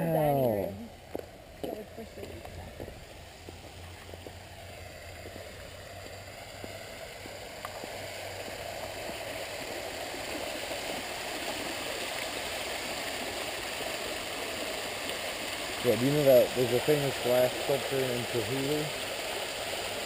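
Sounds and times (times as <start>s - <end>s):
fountain water splashing into pool: 0.0s - 20.0s.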